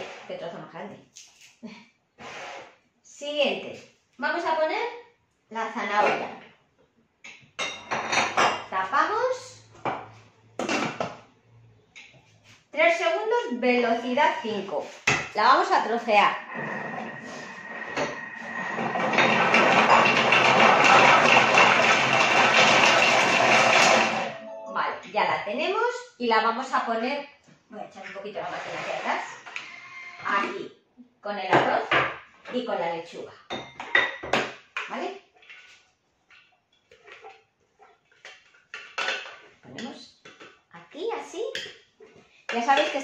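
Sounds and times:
spatula scraping metal bowl: 0.0 - 0.4, 16.0 - 24.2, 28.4 - 30.4
food processor blade whirring: 16.4 - 24.3.

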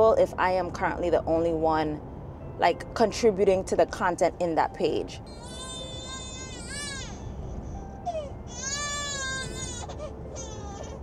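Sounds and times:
baby crying: 5.3 - 11.0.

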